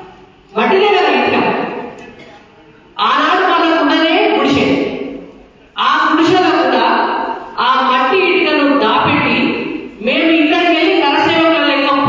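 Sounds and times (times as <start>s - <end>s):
woman speaking into microphone: 0.5s - 1.9s, 3.0s - 12.0s.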